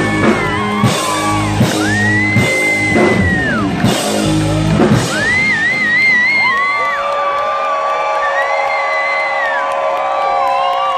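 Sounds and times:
crowd cheering and whooping: 0.0s - 10.9s.

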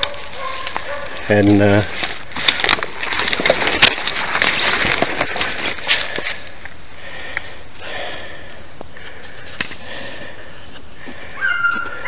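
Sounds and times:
twigs crackling and snapping underfoot: 0.0s - 8.0s, 8.8s - 12.0s.

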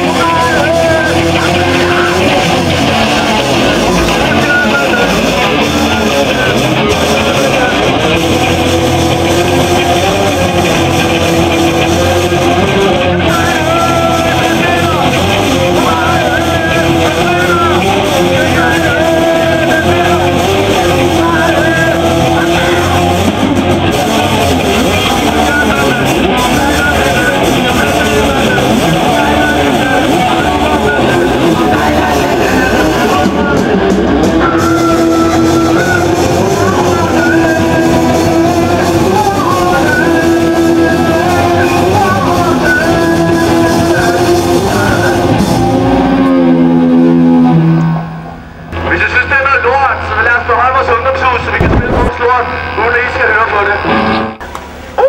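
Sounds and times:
punk rock band playing loud: 0.0s - 55.0s.

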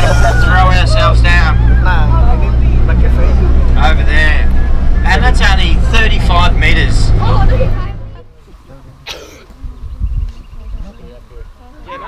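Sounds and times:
bus engine droning: 0.0s - 12.0s
voices: 0.0s - 12.0s.

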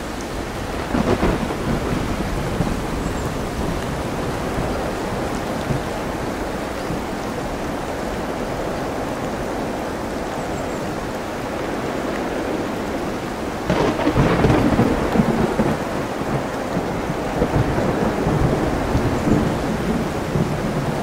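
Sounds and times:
loud crackling rumble: 0.0s - 9.5s, 11.5s - 21.0s
ocean surf: 0.0s - 21.0s
steady rain: 0.0s - 21.0s.

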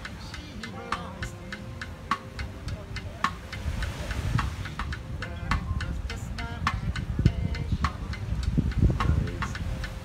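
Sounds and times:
plucked double bass: 1.6s - 10.0s
drum struck with sticks: 2.1s - 5.9s.

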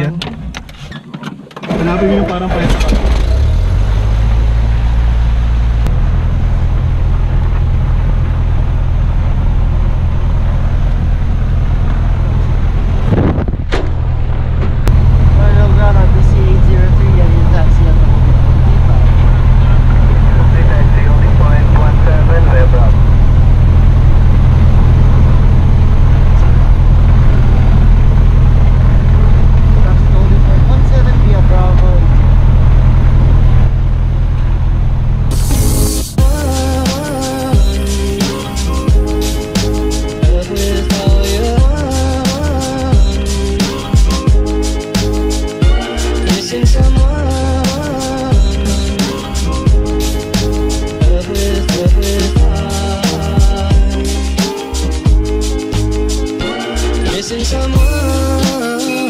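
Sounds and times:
piston aircraft engine idling: 1.7s - 51.5s.

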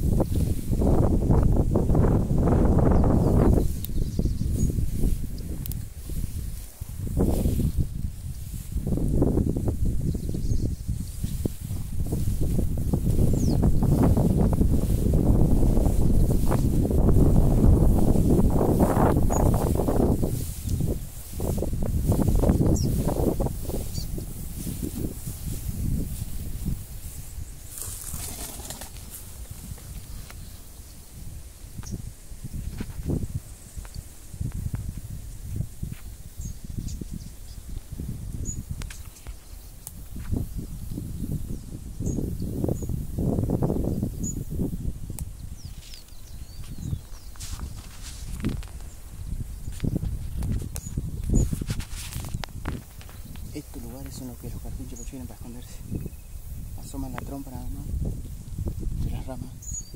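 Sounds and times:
wind buffeting microphone: 0.0s - 59.9s
faint bird chirps: 54.2s - 56.5s, 59.2s - 59.9s.

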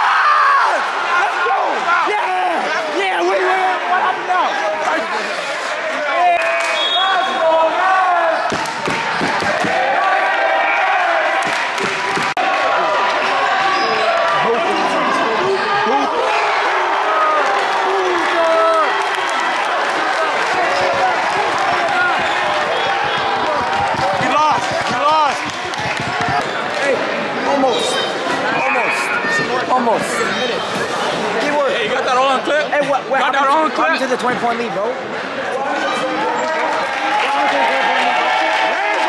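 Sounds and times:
crowd talking and shouting: 0.0s - 39.0s.

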